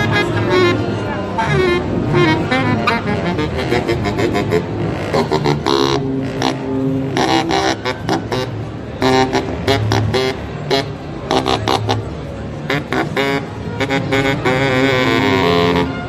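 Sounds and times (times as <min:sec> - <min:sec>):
baritone saxophone playing: 0:00.0 - 0:16.0.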